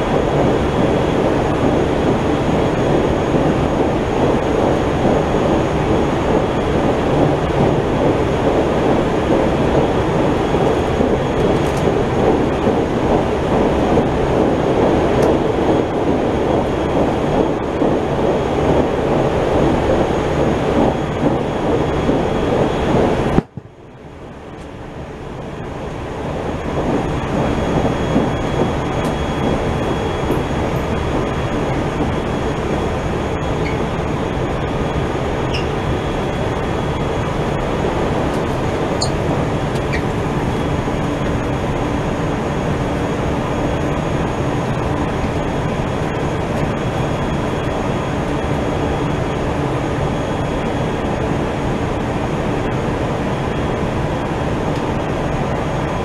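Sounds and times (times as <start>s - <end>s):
train rumble from inside carriage: 0.0s - 56.0s.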